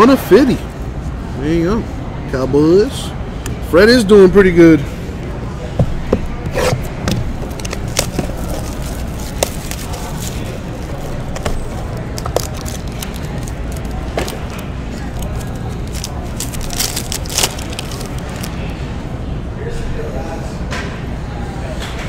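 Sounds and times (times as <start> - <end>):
steady low hum: 3.0 - 21.4
rustling plastic wrap: 6.3 - 18.8.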